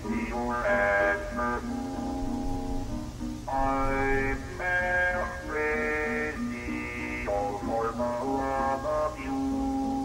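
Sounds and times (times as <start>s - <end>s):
instrumental melody of held notes: 0.0s - 10.0s.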